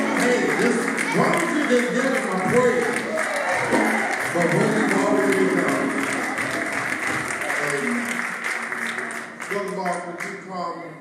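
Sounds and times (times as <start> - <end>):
people calling out in praise: 0.0 - 6.8
keyboard music: 0.0 - 10.2
congregation applauding: 0.0 - 11.0.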